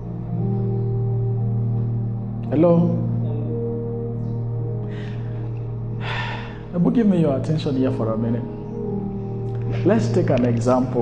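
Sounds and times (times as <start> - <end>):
low background drone: 0.0 - 11.0
man speaking: 9.7 - 11.0.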